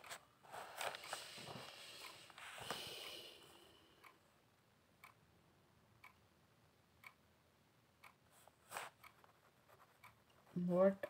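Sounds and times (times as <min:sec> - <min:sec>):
woman speaking: 0:10.5 - 0:11.0.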